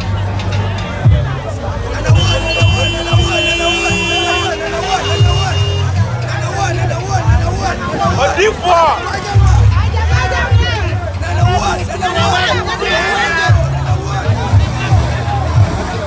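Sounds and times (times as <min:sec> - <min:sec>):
crowd shouting and cheering: 0:00.0 - 0:16.0
loud music with heavy bass: 0:00.0 - 0:16.0.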